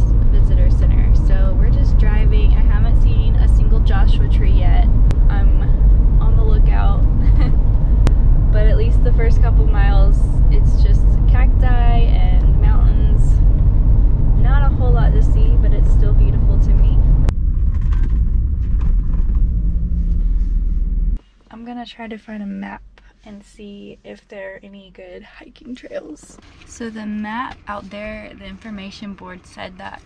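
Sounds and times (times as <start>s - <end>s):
road and engine rumble in van: 0.0s - 21.2s, 25.3s - 30.0s.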